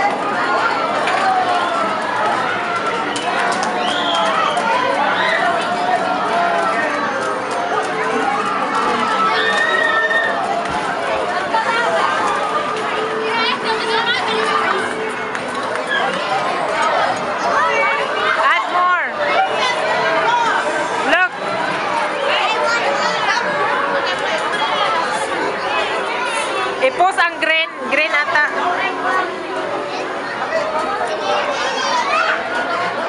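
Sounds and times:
arcade hubbub: 0.0 - 33.0
overlapping voices chattering: 0.0 - 33.0.

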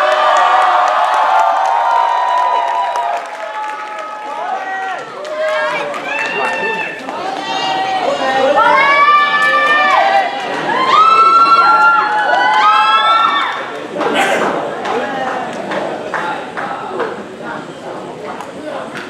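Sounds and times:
whoops: 0.0 - 5.0, 10.7 - 13.5
crowd shouting and cheering: 0.0 - 17.0.

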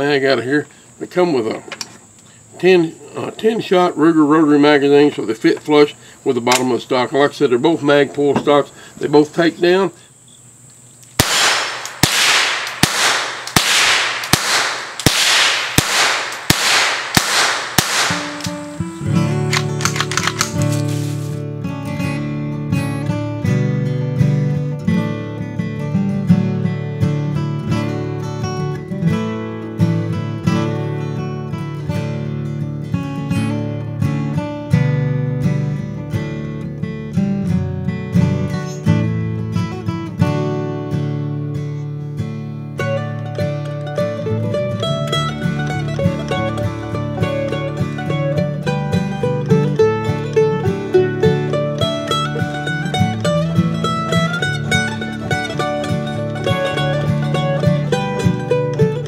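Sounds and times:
rifle shots: 11.2 - 18.9
acoustic guitar music: 17.1 - 59.0.

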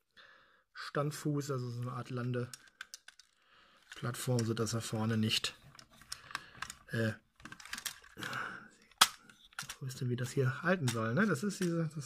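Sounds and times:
plastic toy parts clicking: 1.8 - 12.0.

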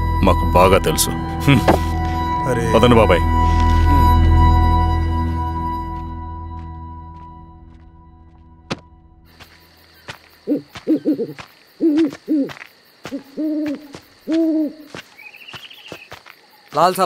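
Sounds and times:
night insects chirring: 0.0 - 6.1, 8.7 - 17.0
owl hooting: 10.0 - 16.1.

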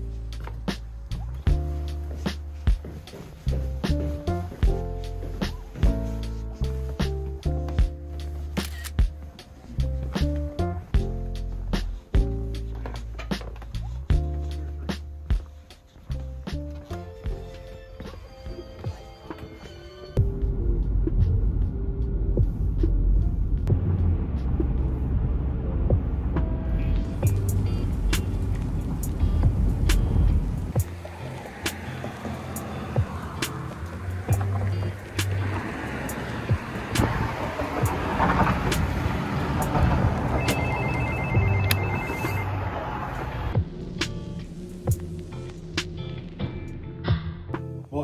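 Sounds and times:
background music: 0.0 - 48.0
street ambience: 0.0 - 48.0
car cabin road rumble: 20.2 - 46.6.

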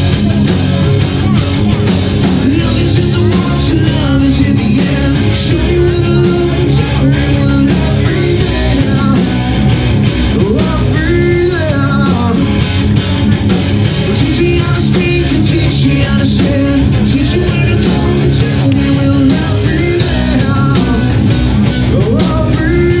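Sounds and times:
bass guitar: 0.0 - 23.0
drums keeping a steady beat: 0.0 - 23.0
electric guitar: 0.0 - 23.0
singer singing into a microphone: 2.3 - 12.6, 14.0 - 23.0.

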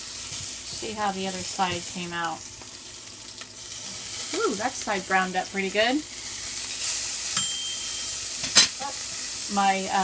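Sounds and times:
patty sizzling on hot pan: 0.0 - 10.0
short ringing clink: 7.4 - 8.2.

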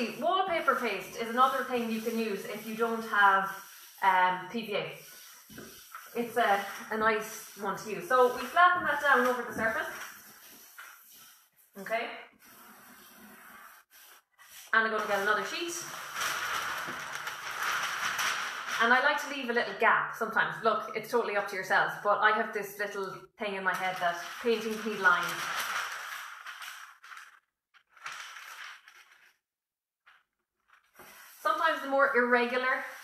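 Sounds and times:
newsprint sheet rustling: 0.0 - 11.6, 12.5 - 19.5, 23.6 - 33.0
palms rubbing over paper: 0.0 - 16.9, 30.1 - 33.0.

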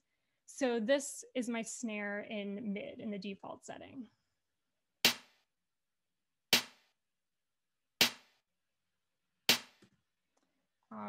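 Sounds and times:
snare drum hits: 5.1 - 5.4, 6.6 - 6.8, 8.0 - 8.3, 9.5 - 9.8.

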